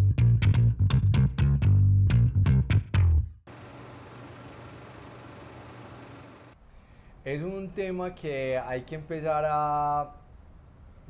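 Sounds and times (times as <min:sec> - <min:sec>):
plucked guitar and bass music: 0:00.0 - 0:03.4
static hiss: 0:03.5 - 0:06.6.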